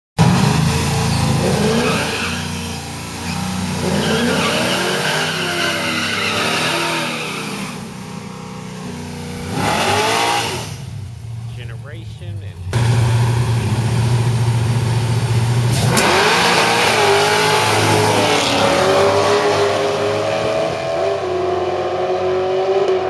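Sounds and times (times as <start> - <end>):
car engines revving: 0.2 - 23.0.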